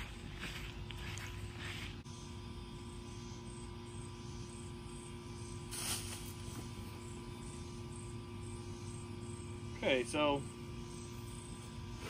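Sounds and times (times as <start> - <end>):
faint insect chirping: 0.0 - 12.0
steady outdoor hum: 0.0 - 12.0
net swept through foliage: 5.7 - 6.5.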